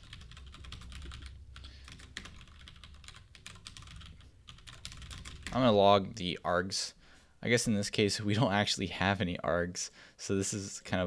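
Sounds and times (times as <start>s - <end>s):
keyboard typing clicks: 0.0s - 5.5s
low steady hum: 0.0s - 8.5s.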